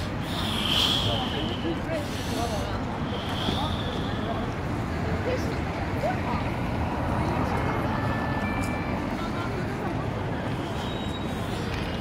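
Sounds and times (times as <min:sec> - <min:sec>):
rumble of cars and buses: 0:00.0 - 0:12.0.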